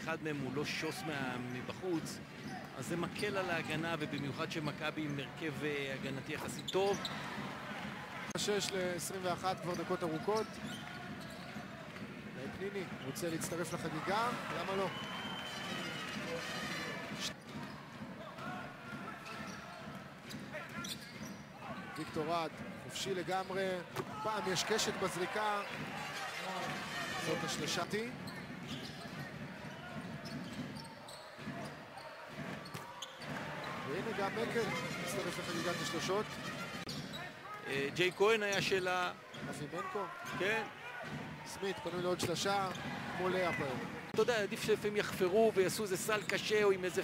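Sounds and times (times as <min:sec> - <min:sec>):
basketball court sounds: 0:00.0 - 0:46.8
arena crowd noise: 0:00.0 - 0:47.0
shoe squeaks: 0:06.0 - 0:07.5, 0:09.2 - 0:11.7, 0:14.8 - 0:18.0, 0:19.0 - 0:22.4, 0:23.2 - 0:25.0, 0:25.7 - 0:40.5, 0:45.8 - 0:46.7
basketball bouncing on court: 0:17.1 - 0:22.8, 0:27.5 - 0:33.8, 0:41.0 - 0:46.3.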